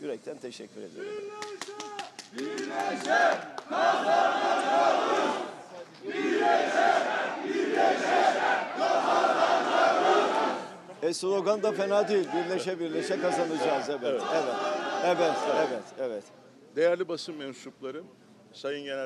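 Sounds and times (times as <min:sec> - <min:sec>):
sharp claps: 0:01.4 - 0:04.8
crowd chanting in unison: 0:02.3 - 0:16.0.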